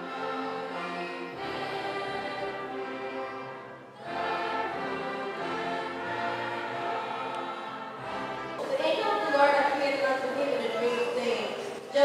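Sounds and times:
choir singing a carol: 0.0 - 10.4
orchestral accompaniment: 0.0 - 12.0.

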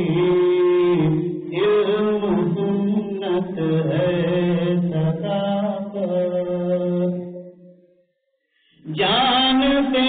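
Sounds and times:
man chanting devotional verse: 0.0 - 7.5, 8.8 - 10.0.

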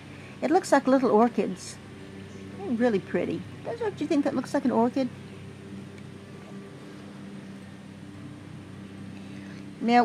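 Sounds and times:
faint outdoor background noise: 0.0 - 10.0
machine motor hum: 0.0 - 10.0.

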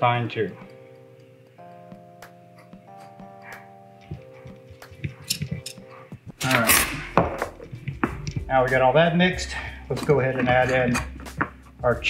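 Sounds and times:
soft background music: 0.0 - 12.0.

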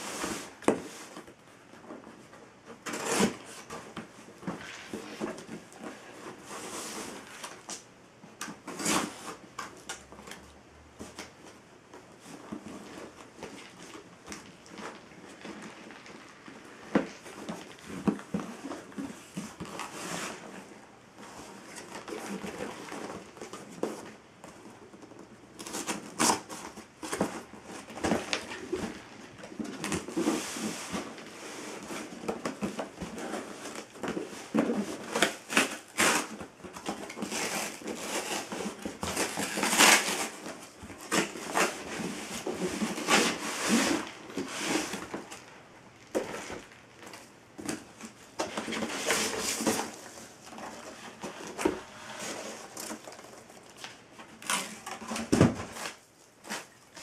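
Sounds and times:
cardboard box being opened: 46.1 - 57.0.

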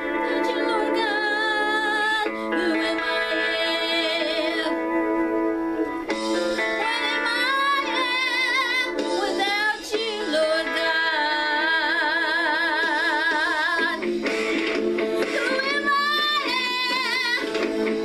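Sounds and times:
woman singing worship song: 0.2 - 4.8, 6.8 - 14.0, 15.3 - 17.6.

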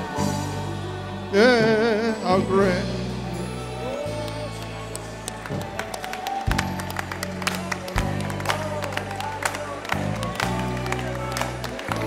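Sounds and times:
gospel band playing: 0.0 - 12.0
keyboard and bass chords: 0.0 - 12.0
hand claps: 4.2 - 12.0.

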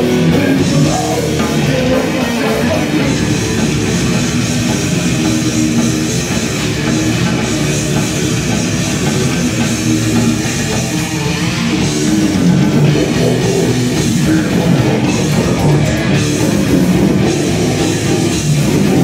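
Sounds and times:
distorted electric guitars: 0.0 - 19.0
drum kit: 0.0 - 19.0.

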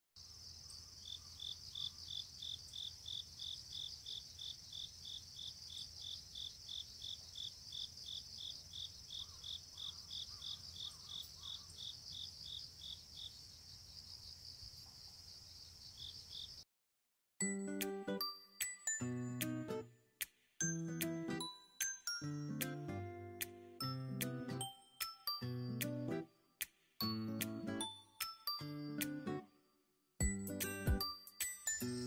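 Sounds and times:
insect rhythmic chirps: 0.2 - 16.6.

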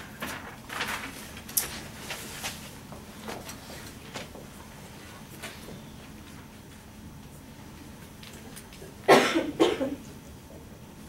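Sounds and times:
person coughing: 9.1 - 10.1.

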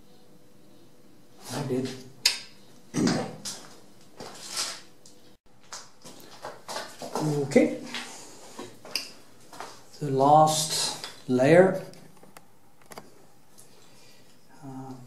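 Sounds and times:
man's indistinct voice: 7.1 - 8.0.

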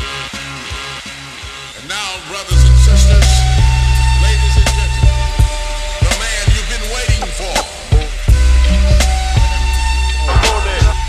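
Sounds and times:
instrumental music: 0.0 - 11.0.

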